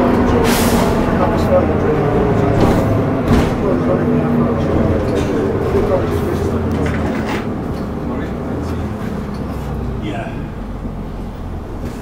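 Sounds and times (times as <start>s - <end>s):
bus engine rumble: 0.0s - 12.0s.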